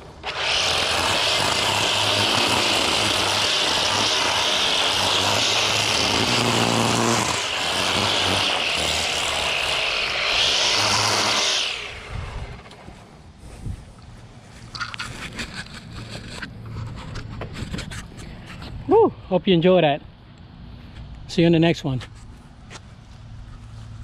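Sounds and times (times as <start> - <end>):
trimmer line cutting concrete edge: 0.0 - 13.1
string trimmer engine: 0.0 - 13.2.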